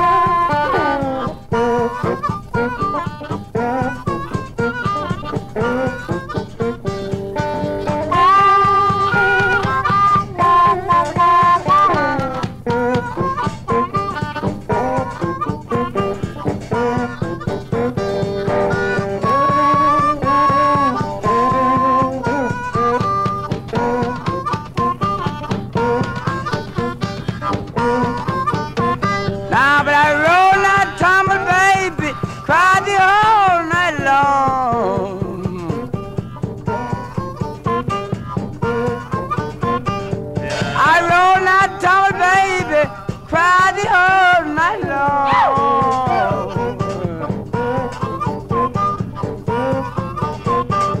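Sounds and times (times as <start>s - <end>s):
guitar: 0.0s - 51.0s
harmonica bending notes: 0.0s - 51.0s
steady drum beat: 0.0s - 51.0s.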